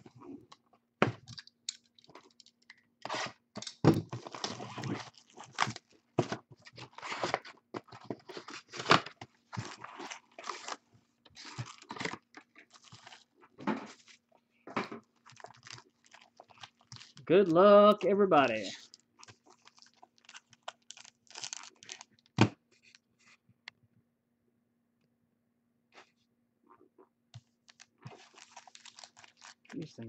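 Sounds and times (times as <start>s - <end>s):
packaging crinkling and tearing: 4.1s - 14.3s, 15.0s - 17.3s, 18.4s - 23.0s, 27.6s - 30.0s.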